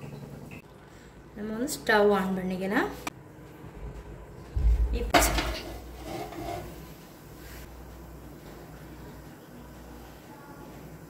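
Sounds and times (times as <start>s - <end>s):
metal pot clanking on stove: 5.1s - 6.7s.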